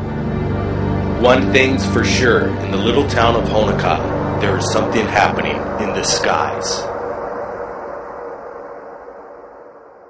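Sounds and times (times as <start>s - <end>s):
droning background music: 0.0s - 10.0s.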